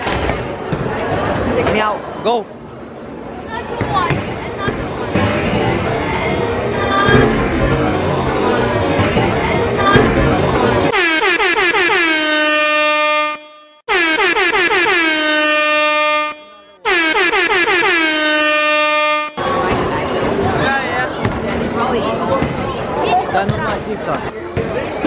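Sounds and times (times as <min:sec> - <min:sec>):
air horn blasts: 0:10.9 - 0:19.4.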